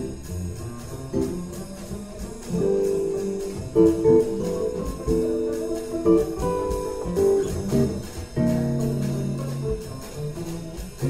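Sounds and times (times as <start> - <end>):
cymbal strokes: 0.0 - 11.0
held chords: 0.0 - 11.0
plucked upright bass: 0.0 - 11.0.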